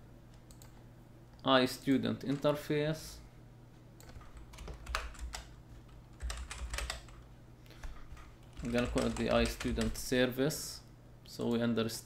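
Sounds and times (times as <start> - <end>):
computer keyboard typing: 4.0 - 7.2, 7.8 - 10.1.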